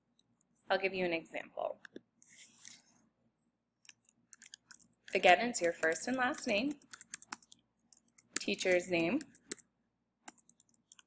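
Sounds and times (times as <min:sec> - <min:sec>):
computer keyboard keystrokes: 0:03.9 - 0:09.6, 0:10.3 - 0:11.0.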